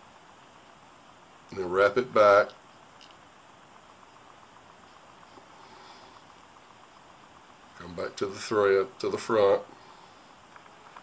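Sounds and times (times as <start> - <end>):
quiet steady hiss: 0.0 - 11.0.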